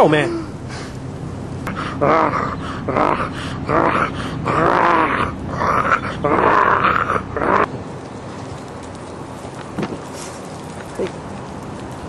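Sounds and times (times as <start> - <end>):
man wailing sobs: 1.7 - 7.6.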